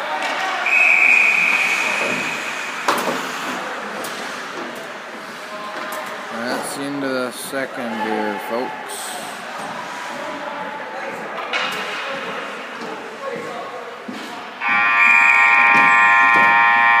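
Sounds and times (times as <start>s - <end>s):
distant voices: 0.0s - 17.0s
scoreboard horn: 14.6s - 17.0s.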